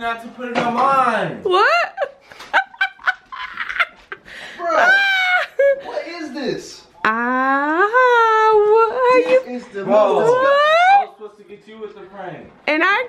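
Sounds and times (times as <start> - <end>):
person crying out and laughing: 4.6 - 5.8, 10.2 - 11.1.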